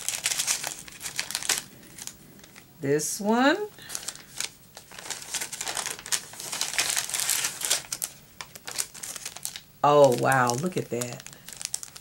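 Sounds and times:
paper and cellophane crinkling: 0:00.0 - 0:02.7, 0:03.8 - 0:12.0.

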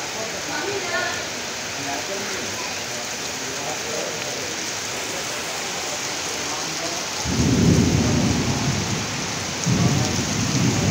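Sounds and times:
heavy rain on paving: 0:00.0 - 0:10.9.

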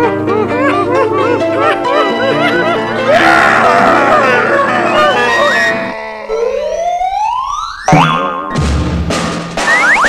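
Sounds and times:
busy comedy film music: 0:00.0 - 0:07.1, 0:07.9 - 0:10.0
comic rising whistle effect: 0:09.6 - 0:10.0.

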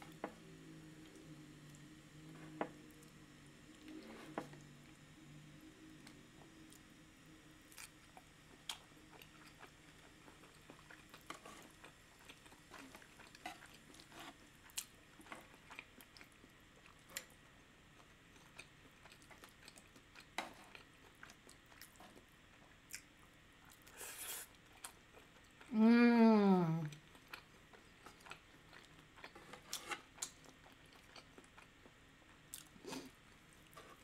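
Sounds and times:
person chewing: 0:07.7 - 0:17.4, 0:18.0 - 0:22.3, 0:22.9 - 0:25.7, 0:26.9 - 0:31.7, 0:32.5 - 0:34.0.

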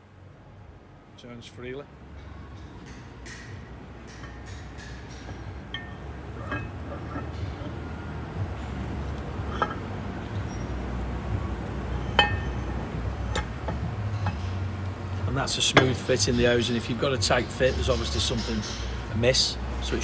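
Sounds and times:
low steady hum: 0:00.0 - 0:20.0
light metallic clinks and taps: 0:02.2 - 0:07.8, 0:09.1 - 0:09.8, 0:12.0 - 0:15.0.

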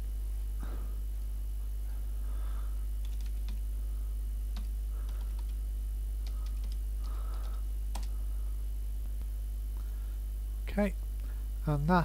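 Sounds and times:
low electrical hum: 0:00.0 - 0:12.0
computer keyboard typing: 0:03.0 - 0:03.7, 0:04.5 - 0:05.6, 0:06.2 - 0:08.2.

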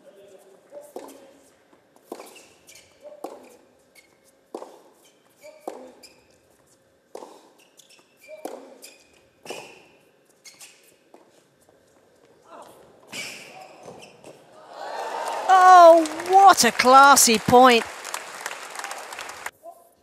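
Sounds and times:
shoes squeaking on court: 0:00.7 - 0:12.1, 0:13.1 - 0:14.4.

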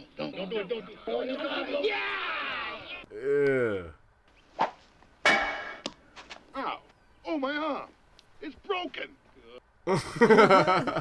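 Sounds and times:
person's vocal cry: 0:03.1 - 0:04.0.

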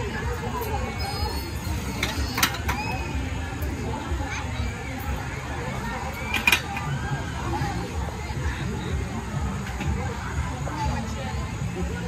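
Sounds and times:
faint children's voices: 0:00.0 - 0:12.0.

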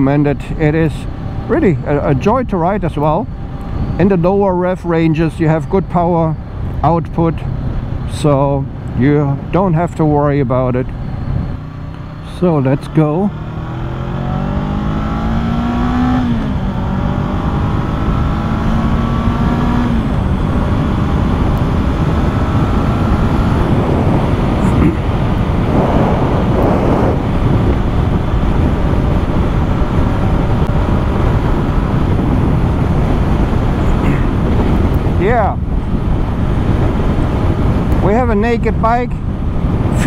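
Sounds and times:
wind and road noise: 0:00.0 - 0:40.0
motorcycle engine accelerating: 0:10.9 - 0:40.0.

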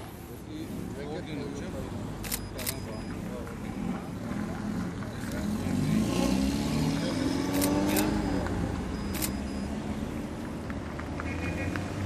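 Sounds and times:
camera shutter clicks: 0:02.2 - 0:02.8, 0:07.5 - 0:08.2, 0:09.1 - 0:09.5
car engine accelerating past: 0:05.3 - 0:08.6.

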